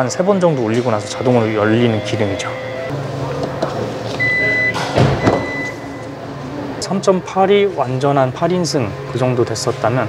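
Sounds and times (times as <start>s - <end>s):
high warning beep: 0.3s - 2.9s, 4.2s - 6.1s.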